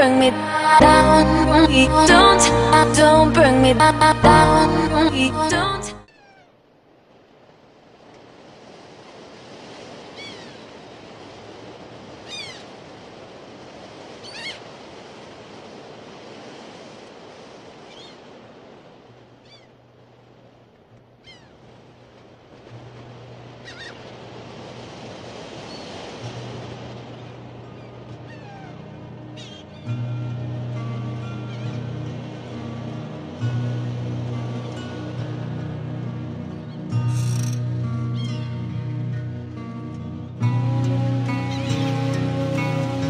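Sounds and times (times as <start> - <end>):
high falling animal calls: 6.0 - 6.5, 10.2 - 10.6, 12.3 - 12.6, 14.2 - 14.6, 17.9 - 18.2, 19.4 - 19.7, 21.2 - 21.6, 23.6 - 24.0, 27.7 - 30.0, 37.1 - 38.5.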